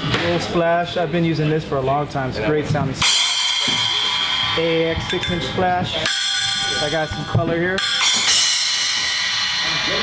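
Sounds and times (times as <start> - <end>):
cymbal struck with drumstick: 3.0 - 10.0.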